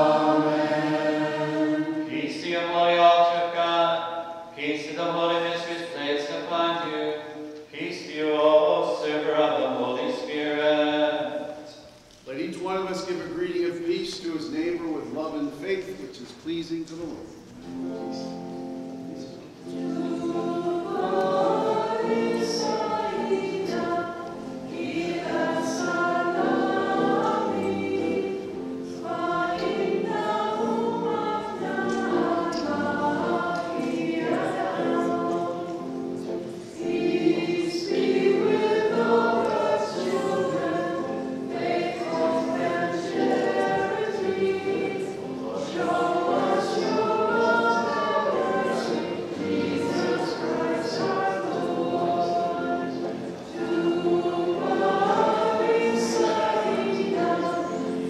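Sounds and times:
voices singing a hymn: 0.0s - 58.0s.

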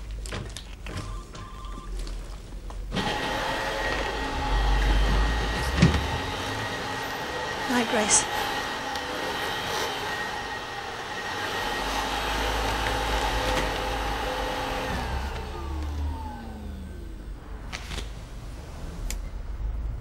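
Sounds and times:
whirring motor winding down: 3.0s - 7.6s, 8.6s - 17.3s.

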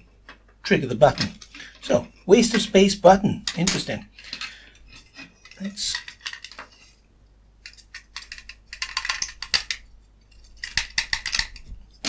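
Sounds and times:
plastic clicks and rattles: 3.4s - 6.8s, 7.6s - 12.0s.

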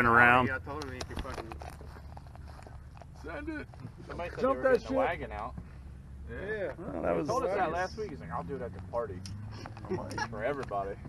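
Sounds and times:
small rustles: 0.9s - 4.4s.

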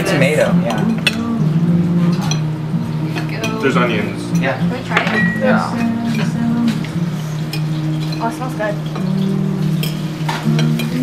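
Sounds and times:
background music: 0.0s - 11.0s
cutlery clinking on plates: 4.4s - 6.8s, 7.5s - 11.0s.

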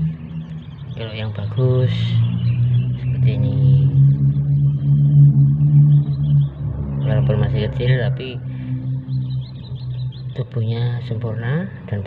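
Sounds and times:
loud steady low hum: 0.0s - 12.0s.

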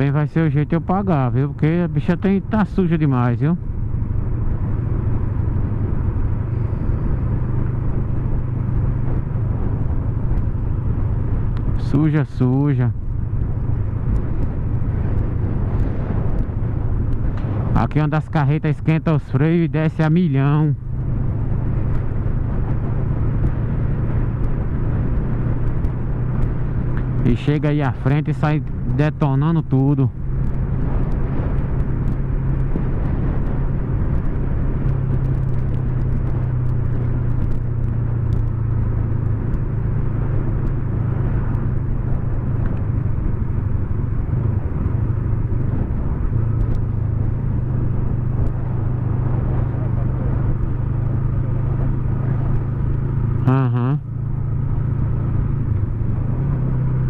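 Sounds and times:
motorcycle engine cruising: 0.0s - 57.0s
wind noise: 0.0s - 57.0s.

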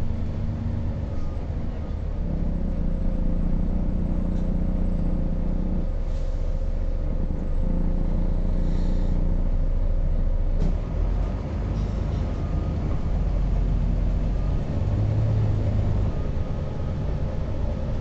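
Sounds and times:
bus engine drone: 0.0s - 18.0s.

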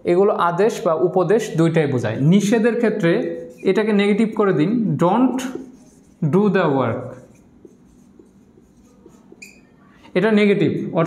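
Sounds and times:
marker pen writing on whiteboard: 2.2s - 10.2s.

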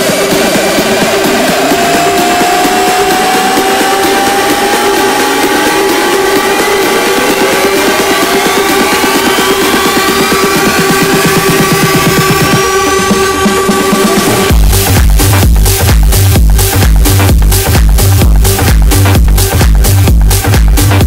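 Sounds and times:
electronic dance music: 0.0s - 21.0s
rising synth sweep: 0.0s - 21.0s.

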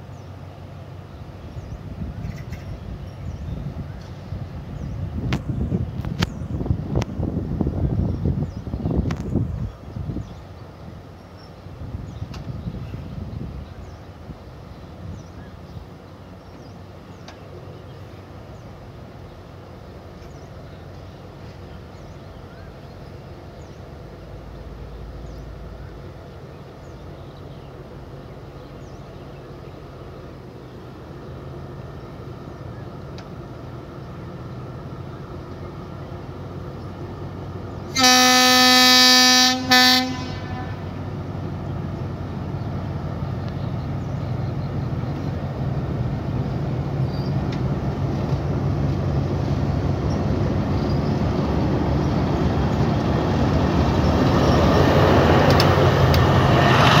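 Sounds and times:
locomotive diesel engine drone: 0.0s - 57.0s
locomotive horn blasts: 37.9s - 41.0s.

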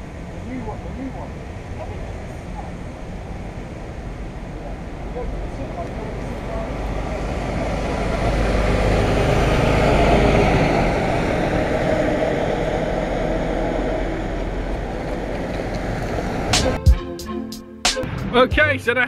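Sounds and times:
vehicle passing by: 0.0s - 16.8s.

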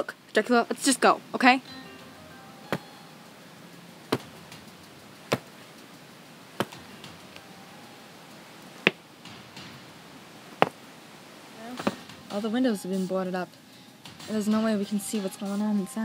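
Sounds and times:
doll shoes tapping on concrete: 6.6s - 7.4s.

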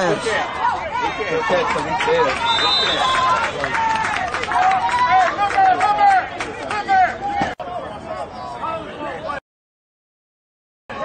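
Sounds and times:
voices shouting and calling out: 0.0s - 9.4s.

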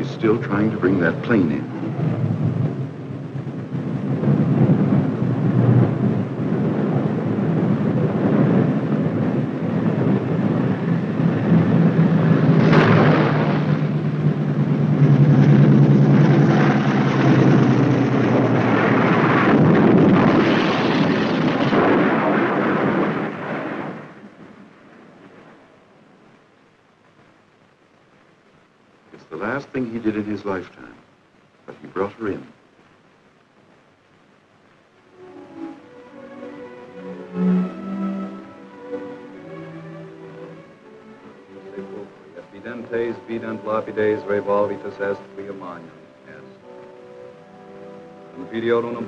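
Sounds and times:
aircraft engines droning: 0.0s - 26.4s, 34.9s - 49.0s
low steady hum: 0.0s - 49.0s
sharp crack: 12.2s - 25.7s.

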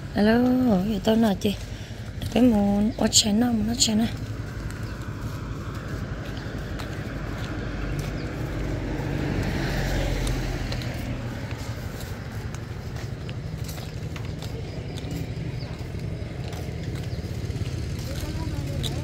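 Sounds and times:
outdoor background noise: 0.0s - 19.0s
vehicle passing: 0.0s - 19.0s.

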